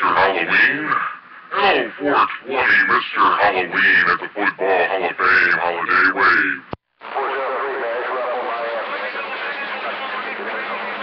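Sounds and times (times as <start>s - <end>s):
faint voice on radio: 0.0s - 11.0s
man's voice on radio: 0.0s - 11.0s
radio static: 0.0s - 11.0s.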